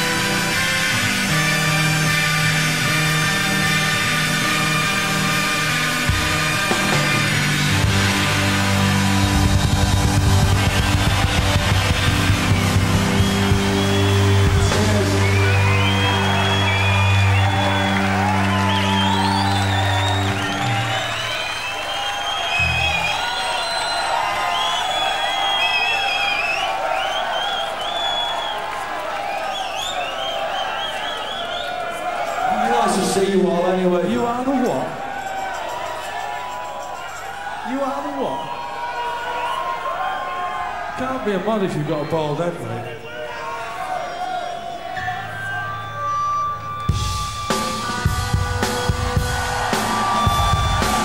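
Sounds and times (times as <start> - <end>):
rock band chord on electric guitars: 0.0 - 20.8
crowd cheering and whistling: 0.0 - 51.0.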